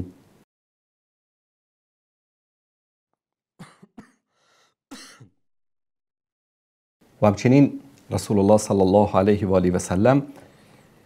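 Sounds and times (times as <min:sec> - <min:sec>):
man coughing and clearing throat: 0:03.6 - 0:04.3, 0:04.9 - 0:05.4.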